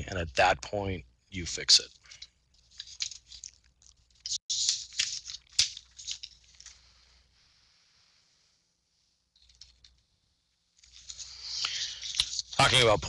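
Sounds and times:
rustling and crinkling: 1.8 - 7.9, 9.2 - 12.8.

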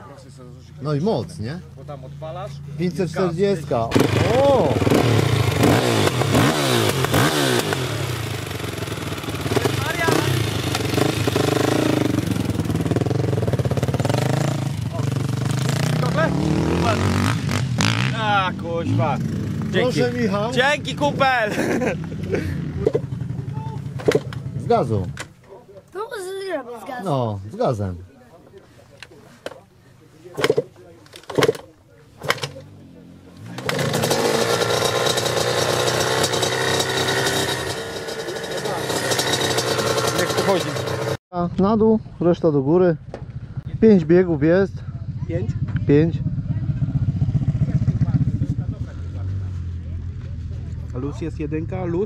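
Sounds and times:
dirt bike engine idling: 0.4 - 16.3, 32.3 - 41.2, 43.0 - 52.0.

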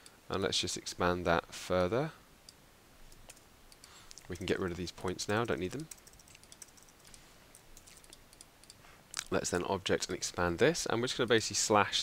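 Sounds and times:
mouse and keyboard clicks: 2.5 - 8.8.

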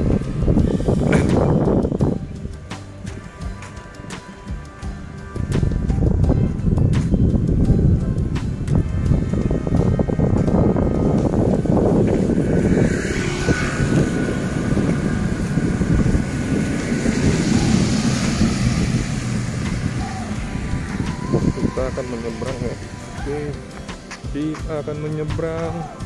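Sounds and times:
low rumble: 0.0 - 24.1
motorcycle riding by: 0.0 - 24.2
tyres hissing on wet road: 8.8 - 26.0.

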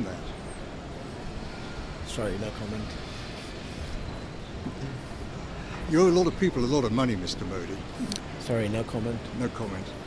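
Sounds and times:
traffic hum: 0.0 - 10.0
man asking a question: 2.0 - 2.9, 5.9 - 10.0.

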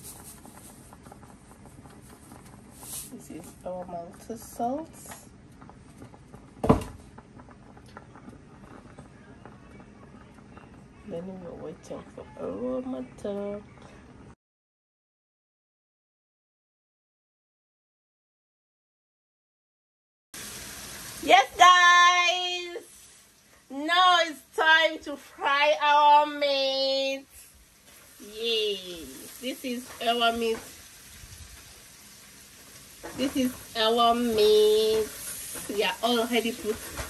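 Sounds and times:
pot boiling and bubbling: 0.0 - 14.4, 20.4 - 37.0
loud thump: 6.6 - 7.0.

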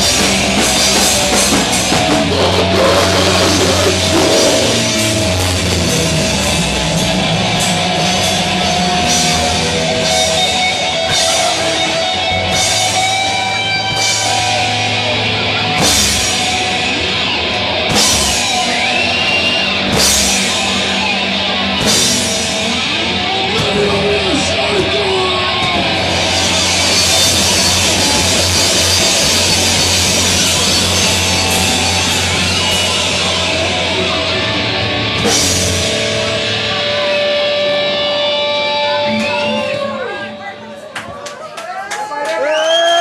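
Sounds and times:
punk rock band playing: 0.0 - 40.9.

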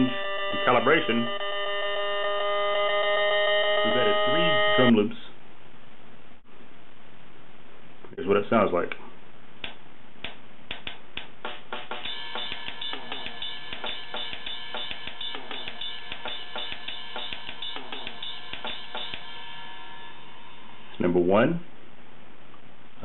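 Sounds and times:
latin drum loop: 10.2 - 19.3.

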